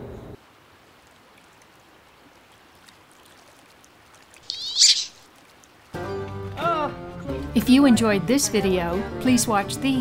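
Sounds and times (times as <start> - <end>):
faint running water: 0.4 - 10.0
duck squealing call: 4.5 - 5.2.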